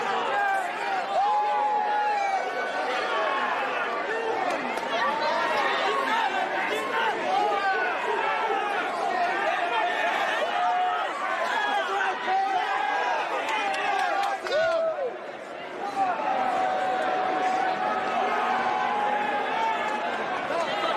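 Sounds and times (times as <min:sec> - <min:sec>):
crowd shouting and chattering: 0:00.0 - 0:20.9.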